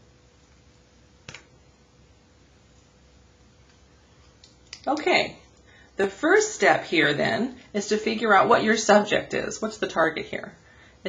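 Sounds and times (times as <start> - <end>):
person speaking: 4.7 - 10.5.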